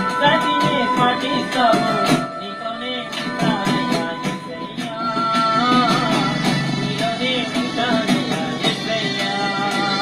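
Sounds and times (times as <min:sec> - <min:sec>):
man singing gospel song: 0:00.0 - 0:10.0
rhythmic beat: 0:00.0 - 0:10.0.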